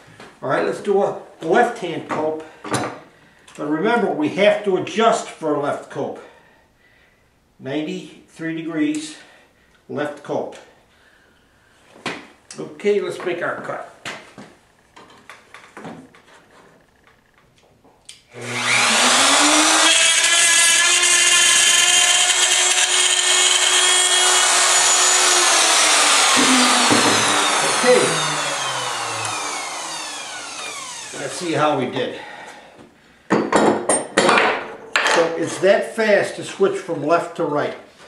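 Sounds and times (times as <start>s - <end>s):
tool and wood trim knocking: 26.1s - 28.2s.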